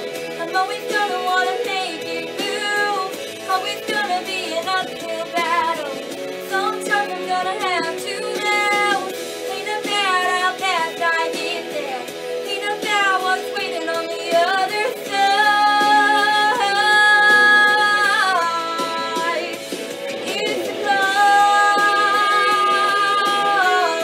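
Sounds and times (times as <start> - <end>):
young woman singing: 0.4 - 24.0.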